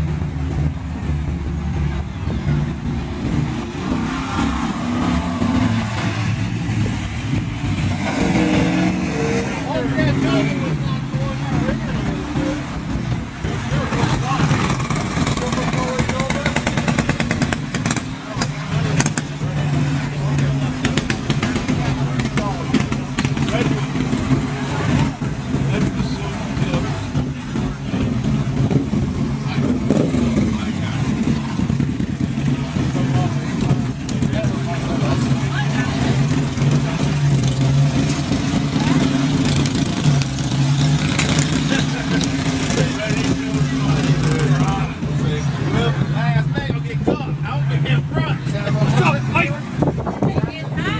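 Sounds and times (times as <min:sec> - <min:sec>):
cars passing on road: 0:00.0 - 0:50.9
people's voices: 0:00.0 - 0:50.9.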